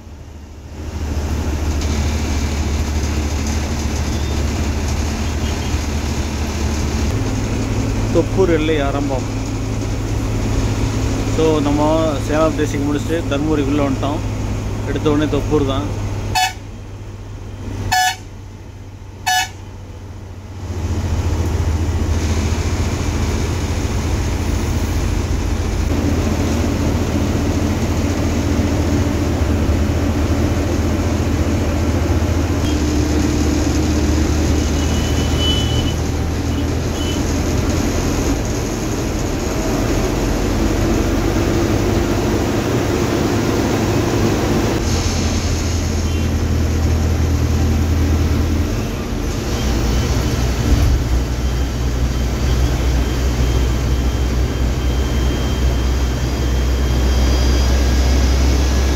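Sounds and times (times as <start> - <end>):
bus engine rumble: 0.0 - 58.9
road noise: 0.0 - 58.9
horn toots: 16.3 - 16.7, 17.9 - 18.3, 19.2 - 19.6.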